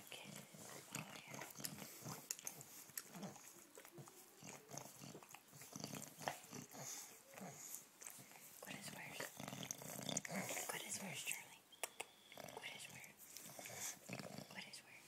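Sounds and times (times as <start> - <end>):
dog licking skin: 0.3 - 11.0.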